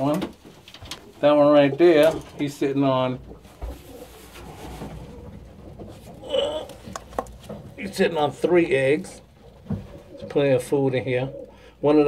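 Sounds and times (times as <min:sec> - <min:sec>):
pigeons cooing: 0:03.6 - 0:07.1, 0:09.0 - 0:12.0.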